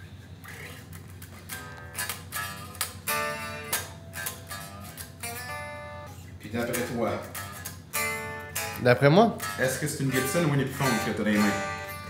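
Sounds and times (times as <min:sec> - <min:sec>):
electric guitar chords ringing: 0:01.5 - 0:12.0.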